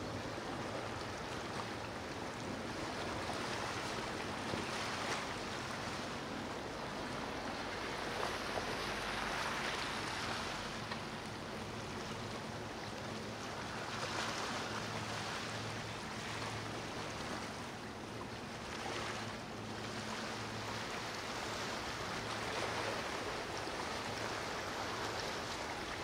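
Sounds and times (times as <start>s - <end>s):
rushing water and surf: 0.0s - 26.0s.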